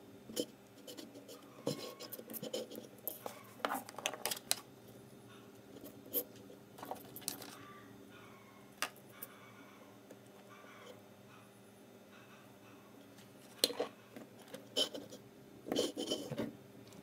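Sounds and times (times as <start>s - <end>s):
small clicks and scratches: 0.3s - 4.6s, 13.4s - 17.0s
hands handling wires: 1.7s - 4.7s, 5.8s - 7.6s.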